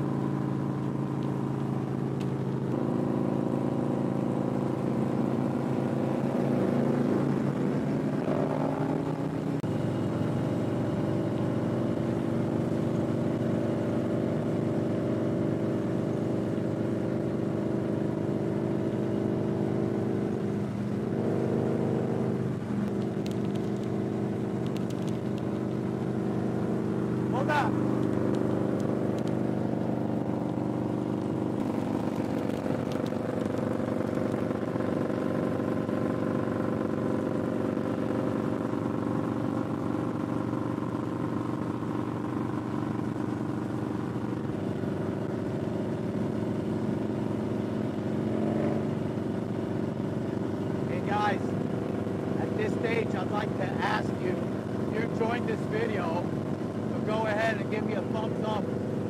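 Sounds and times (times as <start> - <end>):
motorcycle engine cruising: 0.0 - 59.0.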